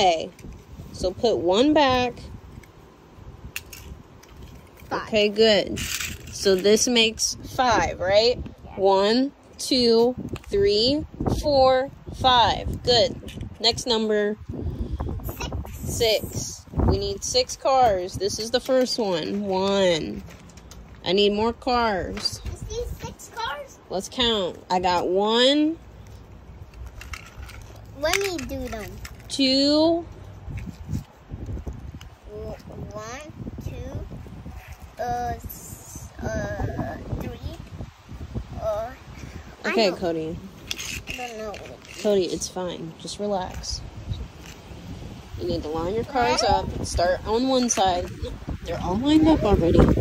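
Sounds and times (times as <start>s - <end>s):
toy car clicking on asphalt: 3.4s - 7.6s, 9.6s - 10.9s, 12.6s - 14.1s, 17.2s - 23.7s, 26.0s - 32.9s, 40.5s - 42.6s, 43.5s - 44.7s, 46.7s - 50.0s.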